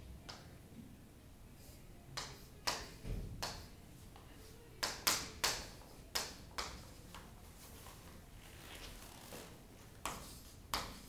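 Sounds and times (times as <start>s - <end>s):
chalk writing on a chalkboard: 1.6s - 8.2s, 9.9s - 11.0s.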